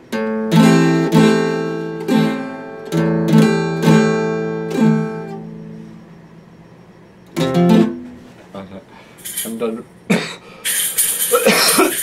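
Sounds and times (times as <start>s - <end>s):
man coughing: 10.1s - 10.5s, 11.3s - 12.0s.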